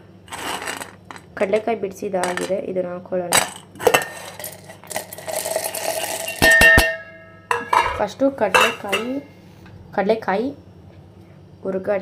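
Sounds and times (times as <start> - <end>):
nuts rattling into metal jar: 0.3 - 2.6, 3.3 - 6.5
metal plate clanking on jar: 3.4 - 9.2.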